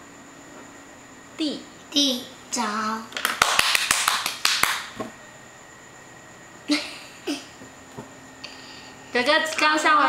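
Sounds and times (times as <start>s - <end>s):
sharp hand claps: 3.2s - 5.1s.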